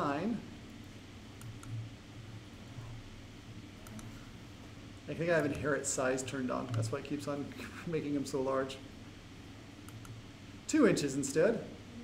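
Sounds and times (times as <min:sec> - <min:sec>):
low steady hum: 0:00.0 - 0:12.0
computer mouse clicks: 0:01.4 - 0:01.8, 0:03.8 - 0:04.2, 0:06.7 - 0:06.9, 0:09.8 - 0:10.2.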